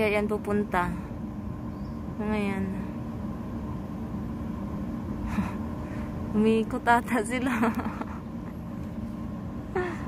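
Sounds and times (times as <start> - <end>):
boat engines rumbling: 0.0 - 10.0.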